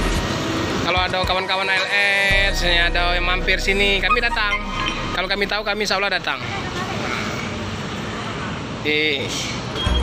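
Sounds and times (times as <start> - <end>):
vehicle engine noise: 0.0 - 1.3, 2.3 - 10.0
man speaking: 1.0 - 6.5.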